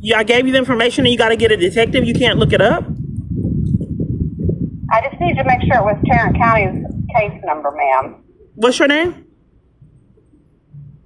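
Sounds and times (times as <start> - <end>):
phone microphone handling rumble: 0.3 - 11.0.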